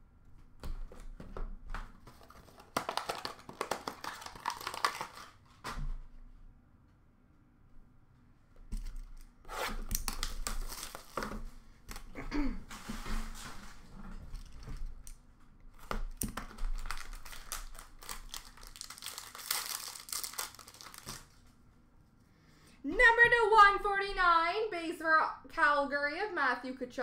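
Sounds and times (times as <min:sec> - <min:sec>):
wrapping being torn and crinkled: 0:02.0 - 0:05.6, 0:08.8 - 0:12.1, 0:14.3 - 0:21.5.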